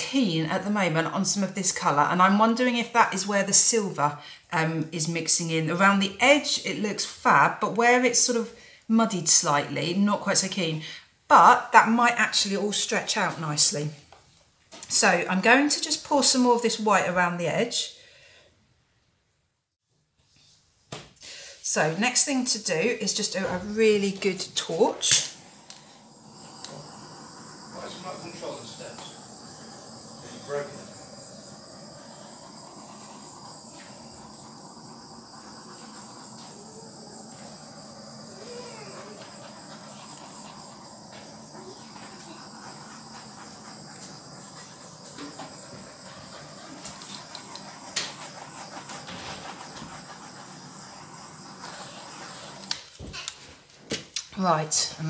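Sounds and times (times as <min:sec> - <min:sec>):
blowtorch flame hissing: 0:00.0 - 0:14.2, 0:14.8 - 0:18.4, 0:21.2 - 0:55.0.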